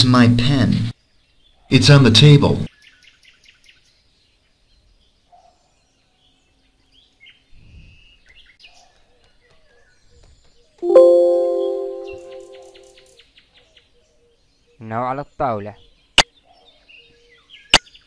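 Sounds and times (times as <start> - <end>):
chime ringing: 10.8 - 12.8
faint high chirps: 10.8 - 13.0.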